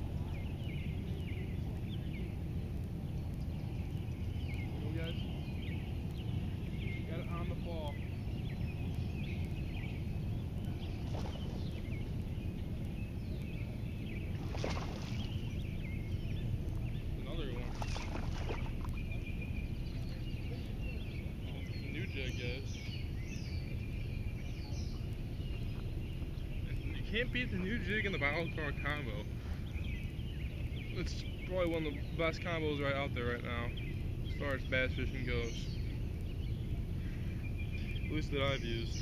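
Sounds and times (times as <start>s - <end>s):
birds chirping: 0.0s - 39.0s
water splashes: 10.5s - 12.6s, 13.9s - 15.8s, 16.7s - 19.4s.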